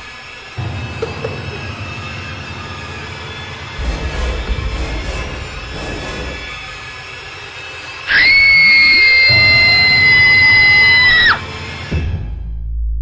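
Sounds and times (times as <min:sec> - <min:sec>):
eerie music drone: 0:00.0 - 0:12.8
piercing high-pitched scream: 0:01.7 - 0:11.8.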